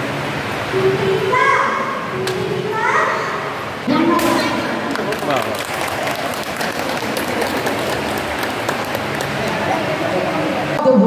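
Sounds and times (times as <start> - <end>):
child's high voice: 0.7 - 3.5.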